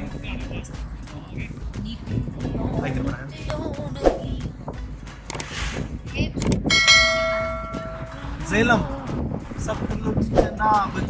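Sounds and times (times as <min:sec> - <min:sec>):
bell-like chime: 0:06.7 - 0:08.2.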